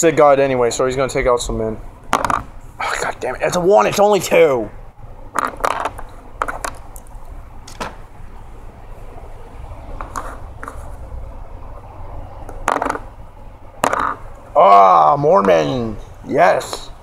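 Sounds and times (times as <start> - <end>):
steady low rumble: 4.7 - 15.4.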